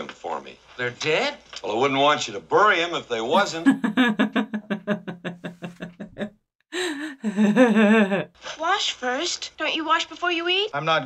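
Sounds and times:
woman laughing: 3.4s - 8.3s.

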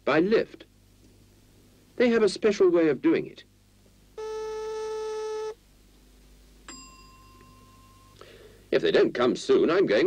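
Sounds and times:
lift call-button buzzer: 4.2s - 5.6s, 6.7s - 8.2s
bell ding: 6.7s - 8.2s.

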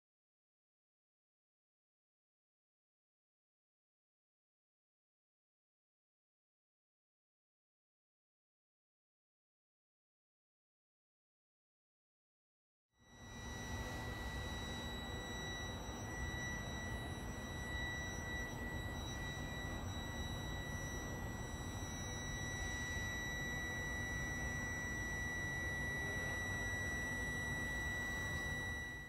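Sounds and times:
high-pitched whine: 13.0s - 29.0s.

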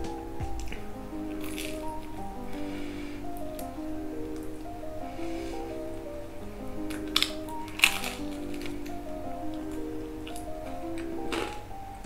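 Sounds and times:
slow sustained music: 0.0s - 12.0s
person chewing pizza: 0.6s - 2.2s, 6.9s - 9.0s, 9.7s - 11.6s.

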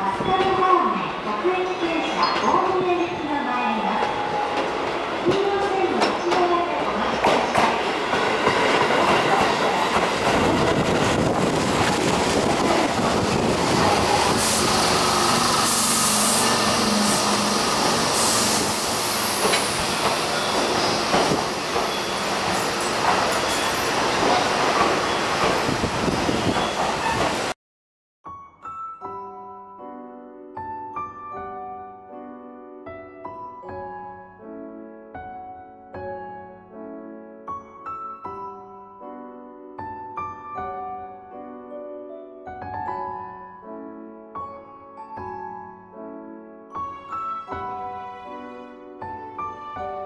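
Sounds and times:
train wheels over rail joints: 7.2s - 27.5s
high brake squeal: 21.9s - 22.4s.

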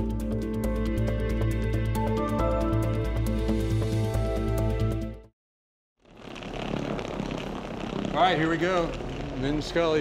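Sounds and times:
suitcase wheels rumbling on floor: 6.0s - 10.0s.

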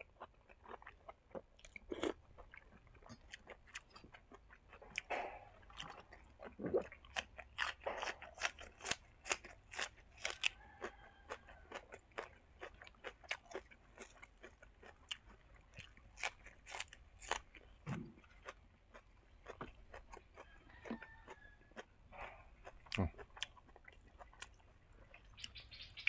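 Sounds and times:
crunching and chewing greens: 0.0s - 26.0s.

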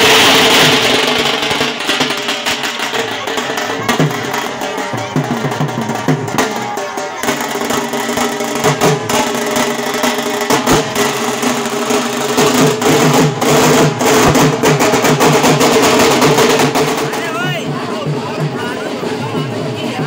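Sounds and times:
barrel drums beaten fast: 0.0s - 20.0s.

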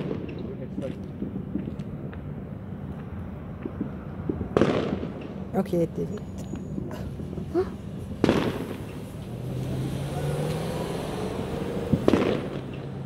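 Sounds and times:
firework bangs: 0.0s - 9.9s, 11.6s - 13.0s.

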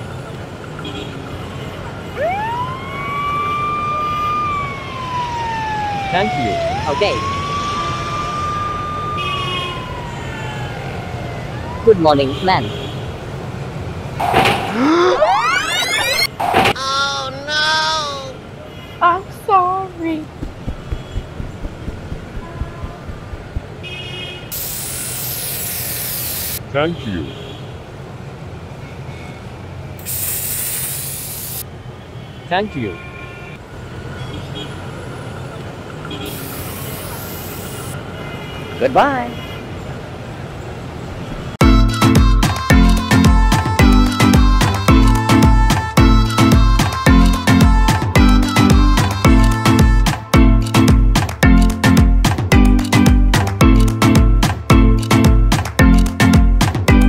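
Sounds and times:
ambulance siren wailing: 2.1s - 12.3s, 14.7s - 16.3s, 41.6s - 50.0s
engine rumbling: 19.9s - 24.1s
bright hiss: 24.5s - 26.6s, 30.0s - 31.6s, 36.3s - 38.0s.

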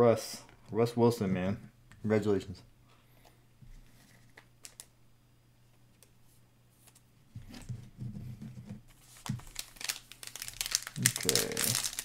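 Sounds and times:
foil pack crinkling: 9.0s - 12.0s.

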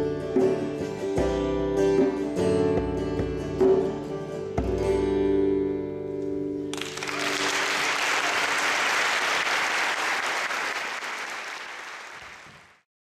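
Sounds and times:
audience applause: 6.8s - 12.8s.

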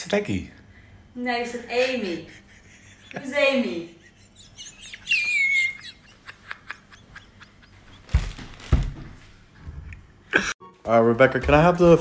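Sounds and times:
man laughing hard: 2.1s - 8.2s.

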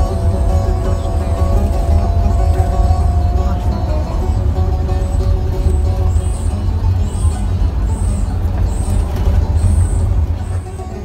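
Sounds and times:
bus engine and road rumble: 0.0s - 11.0s
music playing: 0.0s - 11.0s.

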